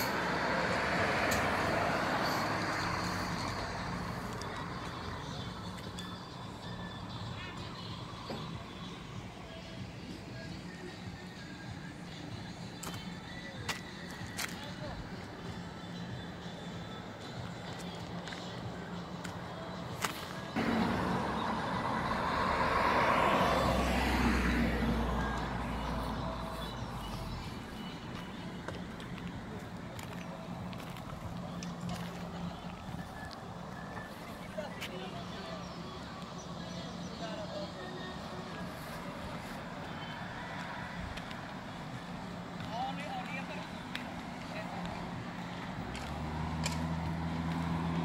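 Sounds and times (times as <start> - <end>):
car driving past: 20.6 - 27.2, 45.8 - 48.0
earthmoving machinery engine hum: 20.6 - 29.9.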